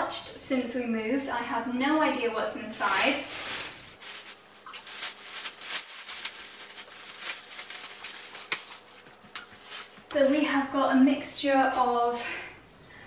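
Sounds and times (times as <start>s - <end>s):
plastic bin bag crinkling: 4.0s - 10.2s.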